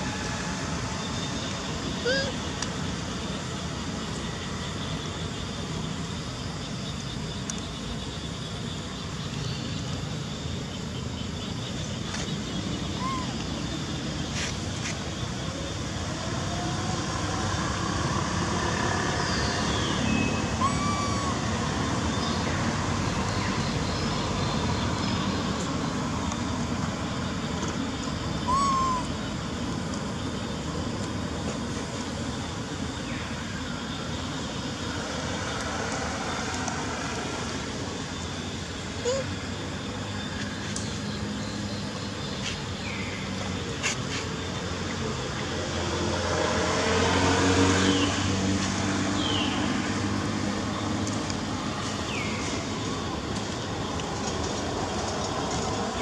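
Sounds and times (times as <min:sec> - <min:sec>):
traffic noise: 0:00.0 - 0:56.0
vehicle engine passing: 0:45.8 - 0:50.6.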